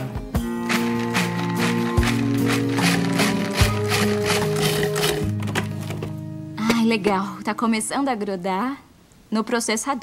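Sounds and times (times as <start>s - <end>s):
upbeat background music: 0.0s - 7.6s.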